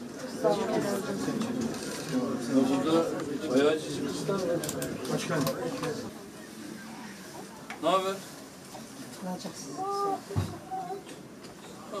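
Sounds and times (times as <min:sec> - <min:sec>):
people talking at once: 0:00.2 - 0:07.2.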